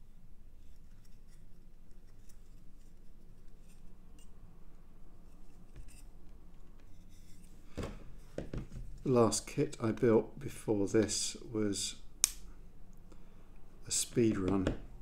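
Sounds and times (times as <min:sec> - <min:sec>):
low steady hum: 0:00.0 - 0:15.0.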